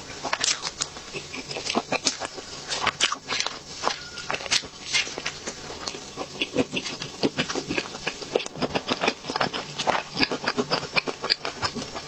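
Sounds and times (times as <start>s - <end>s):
chewing cake: 0.0s - 12.0s.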